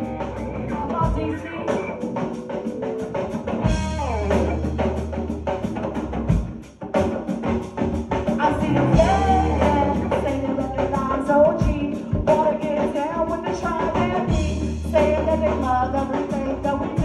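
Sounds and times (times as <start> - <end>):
distorted electric guitar: 0.0 - 6.6, 7.5 - 11.2
djembe hand drum: 0.0 - 17.0
drum kit: 0.0 - 17.0.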